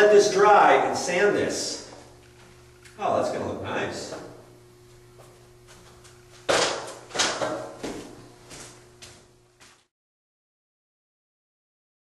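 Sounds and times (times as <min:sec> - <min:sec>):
faint steady hum: 0:00.0 - 0:09.8.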